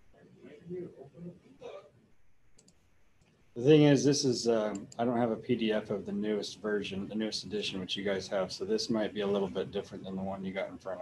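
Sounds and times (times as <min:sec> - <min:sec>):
computer mouse clicks: 0:02.5 - 0:03.4.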